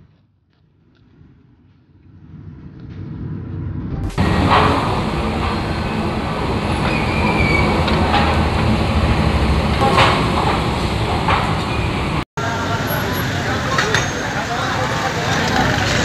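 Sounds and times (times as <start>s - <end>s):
street traffic: 2.0s - 16.0s
electric blower fanning coals: 4.1s - 16.0s.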